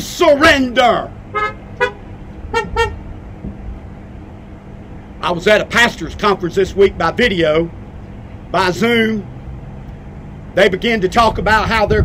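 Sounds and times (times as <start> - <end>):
car horns tooting: 1.3 - 3.2.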